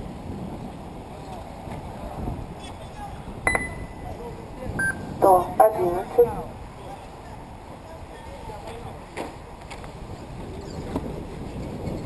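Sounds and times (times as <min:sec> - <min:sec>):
electronic beeps: 0:03.5 - 0:04.2, 0:04.8 - 0:06.4.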